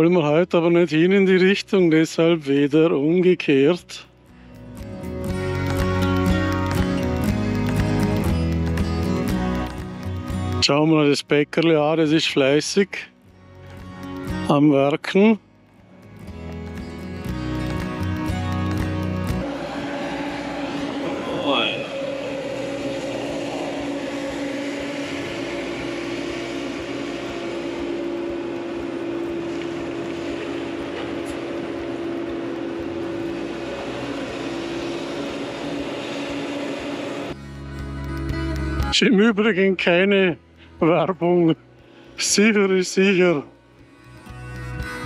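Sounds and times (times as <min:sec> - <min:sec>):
background music: 0:00.0 - 0:45.0
excavator engine and hydraulics: 0:00.0 - 0:45.0
rising squeal: 0:16.3 - 0:37.4.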